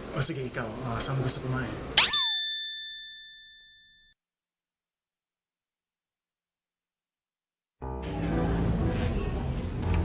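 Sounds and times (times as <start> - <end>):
bright ding chime: 2.0 - 4.2.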